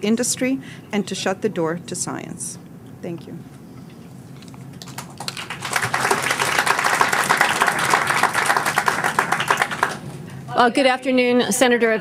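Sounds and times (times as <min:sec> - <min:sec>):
audience applauding: 0:04.8 - 0:10.2.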